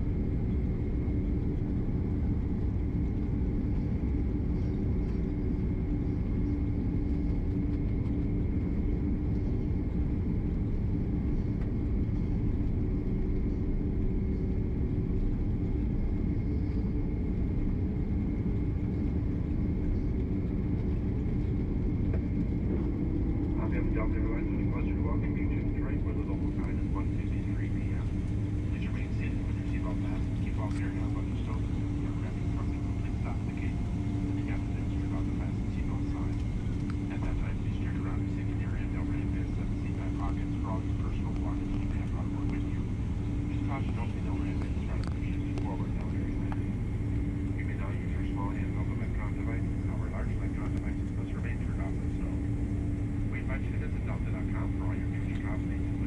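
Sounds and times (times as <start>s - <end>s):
airliner engine rumble: 0.0s - 56.0s
constant hum: 0.0s - 56.0s
muffled voices: 0.4s - 56.0s.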